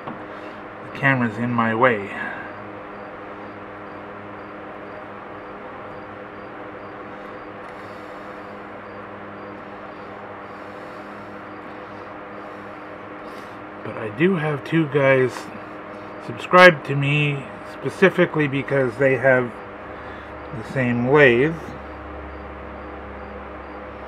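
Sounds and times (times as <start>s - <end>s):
low background hum: 0.0s - 24.0s.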